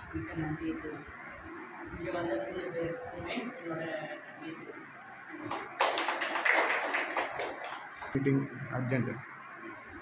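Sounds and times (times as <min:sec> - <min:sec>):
people applauding: 0:05.4 - 0:08.2.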